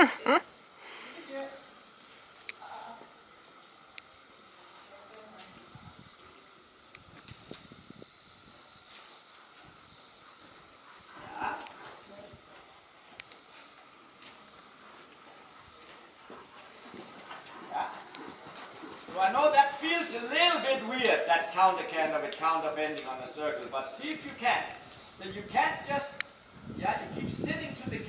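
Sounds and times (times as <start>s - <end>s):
low steady hiss: 0.0s - 28.0s
horse hooves thudding in sand: 3.0s - 28.0s.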